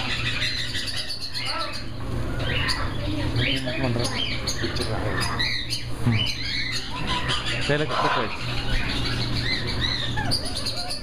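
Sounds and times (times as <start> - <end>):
pet birds chirping and calling: 0.0 - 11.0
steady low hum: 0.0 - 11.0.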